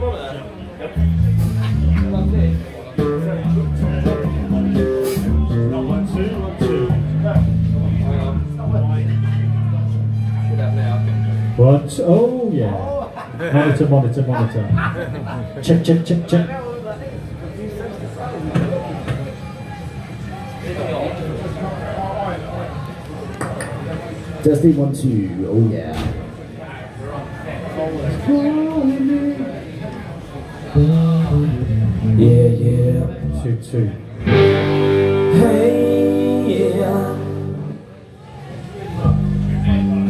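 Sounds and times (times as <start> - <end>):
bass line: 1.0 - 11.9, 30.8 - 37.8, 39.0 - 40.0
indistinct voices: 27.0 - 40.0
electric guitar: 34.2 - 37.8.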